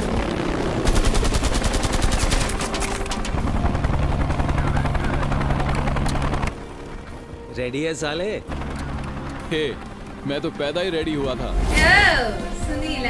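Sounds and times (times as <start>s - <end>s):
rapid automatic gunfire: 0.1s - 6.4s.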